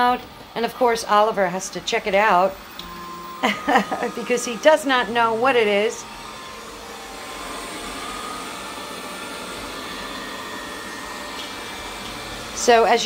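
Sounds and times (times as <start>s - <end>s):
robot vacuum whirring: 0.0s - 13.0s.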